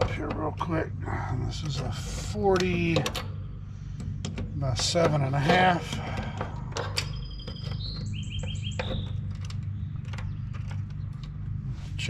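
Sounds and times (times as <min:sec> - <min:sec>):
steady low hum: 0:00.0 - 0:12.0
songbird whistling and chirping: 0:07.0 - 0:09.3.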